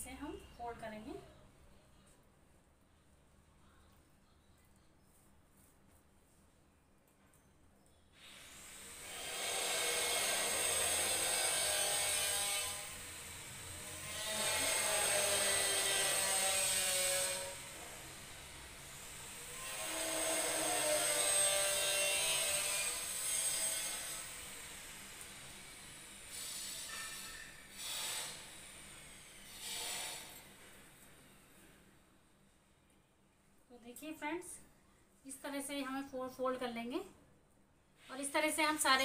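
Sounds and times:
power tool whining: 0:08.4 - 0:30.5.

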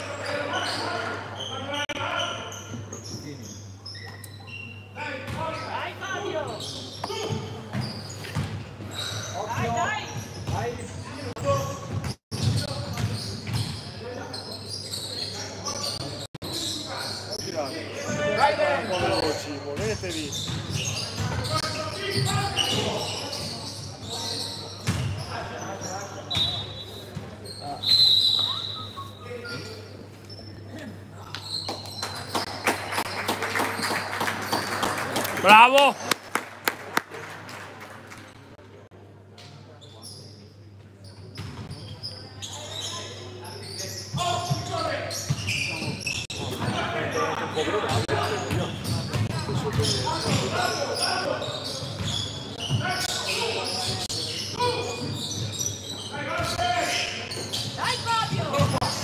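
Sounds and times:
short high squeaks: 0:00.4 - 0:05.0.

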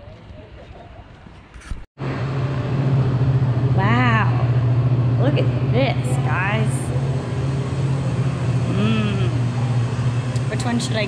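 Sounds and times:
loud low hum: 0:02.0 - 0:11.0.

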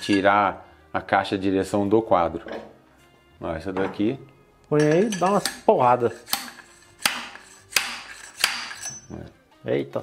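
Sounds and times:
metal-on-metal whacks ringing: 0:06.3 - 0:09.0.

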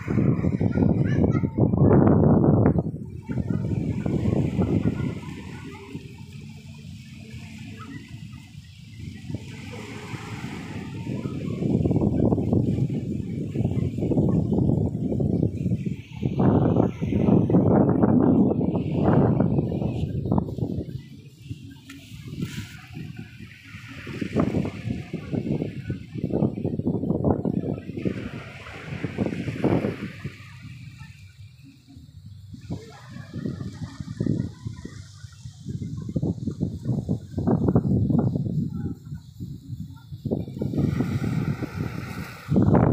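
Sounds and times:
small waves washing onto sand: 0:00.0 - 0:42.9
wind on microphone: 0:00.0 - 0:42.9.

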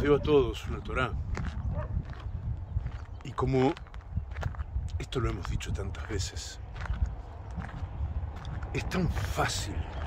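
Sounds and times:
footsteps crunching on gravel: 0:00.0 - 0:10.0
wind rumble: 0:00.0 - 0:10.0.

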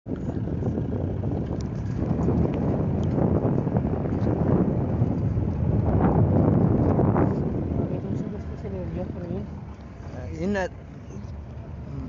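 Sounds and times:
vehicle driving over dirt track: 0:00.1 - 0:11.9.

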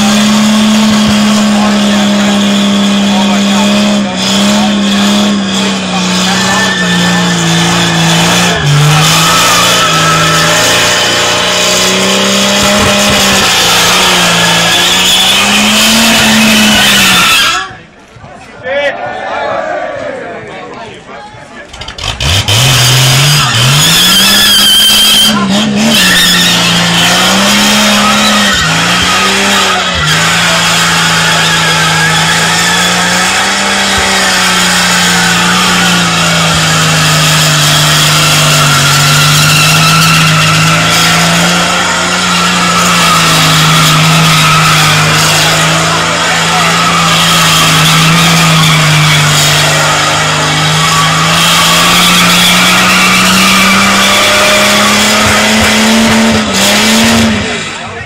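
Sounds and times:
engine revving hard: 0:00.0 - 0:17.7, 0:21.8 - 0:57.9
tyres squealing: 0:01.7 - 0:18.0, 0:21.6 - 0:58.0.

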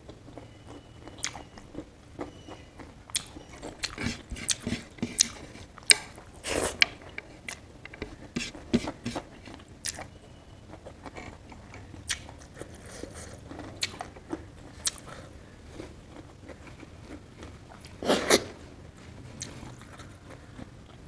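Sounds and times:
person chewing: 0:00.0 - 0:18.6, 0:19.2 - 0:21.0
wet mouth clicks: 0:03.1 - 0:08.2, 0:12.1 - 0:12.3, 0:14.8 - 0:15.1.

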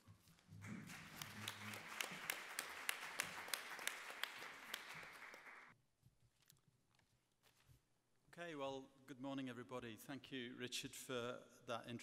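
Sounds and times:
audience applauding: 0:00.6 - 0:05.8.

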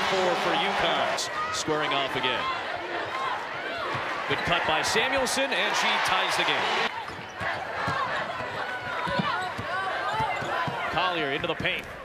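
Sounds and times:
sneakers squeaking on hardwood: 0:07.0 - 0:11.5
basketball bouncing: 0:07.0 - 0:12.0.

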